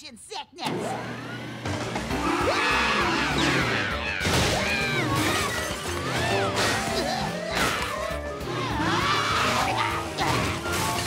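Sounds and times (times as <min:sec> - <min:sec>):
cartoon music with sliding tones: 0:02.1 - 0:11.0.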